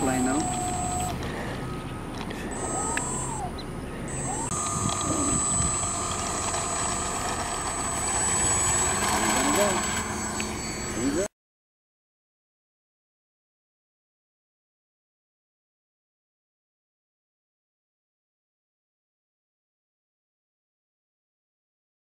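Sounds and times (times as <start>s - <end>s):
model airplane electric motors whining: 0.0s - 11.3s.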